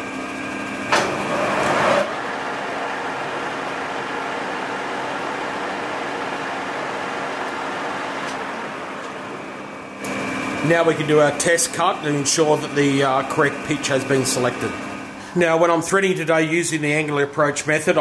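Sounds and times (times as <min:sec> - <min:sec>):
metal lathe whirring: 0:00.0 - 0:16.1.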